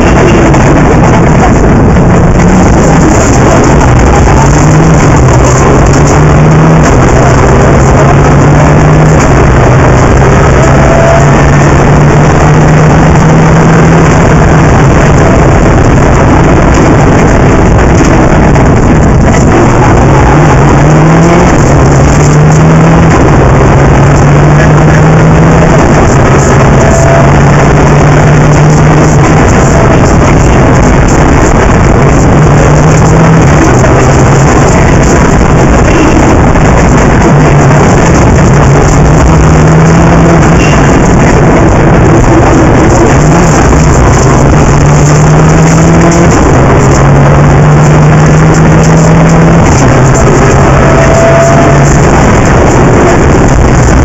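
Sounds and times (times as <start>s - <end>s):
rally car engine revving: 0.0s - 54.0s
wind and road noise: 0.0s - 54.0s.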